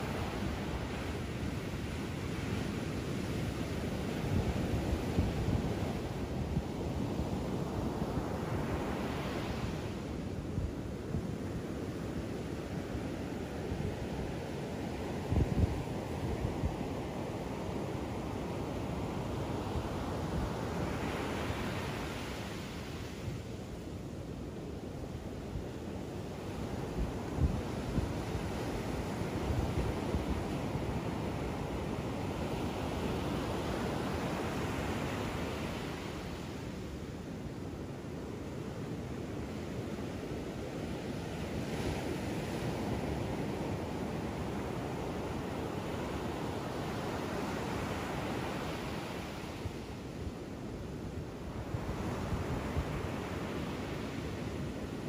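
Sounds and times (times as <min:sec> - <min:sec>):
ocean surf breaking on beach: 0:00.0 - 0:55.0.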